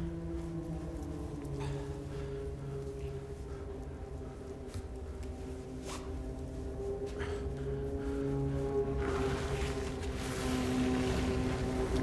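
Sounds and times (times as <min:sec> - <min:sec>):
low droning music: 0:00.0 - 0:12.0.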